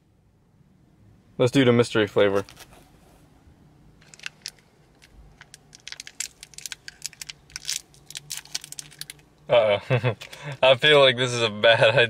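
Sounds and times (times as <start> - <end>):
plastic wrapper crinkling and tearing: 4.0 - 9.4.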